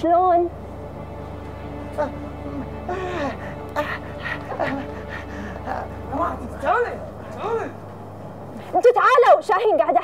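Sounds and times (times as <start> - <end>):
man laughing: 2.9 - 6.0.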